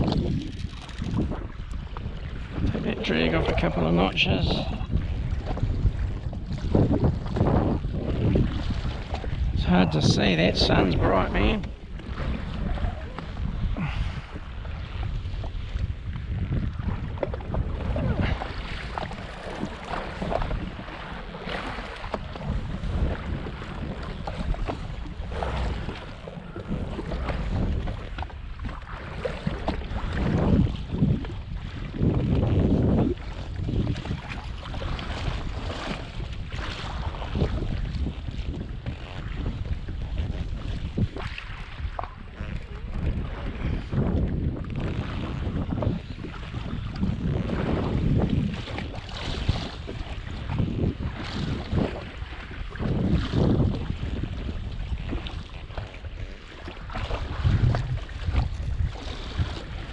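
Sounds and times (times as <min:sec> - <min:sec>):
water slapping against hull: 0:00.0 - 0:59.9
wind buffeting microphone: 0:00.0 - 0:59.9.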